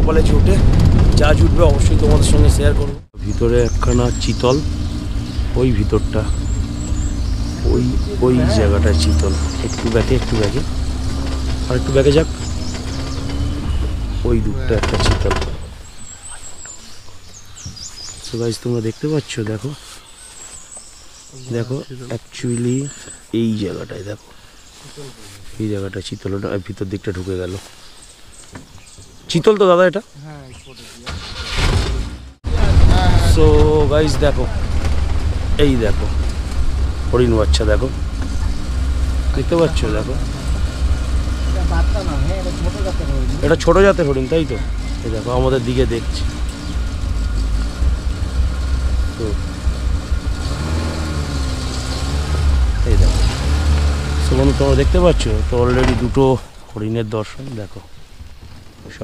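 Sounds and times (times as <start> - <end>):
wind rumble on microphone: 0.0 - 8.2, 32.4 - 39.3
vehicle engine idling: 0.0 - 26.1, 30.5 - 56.6.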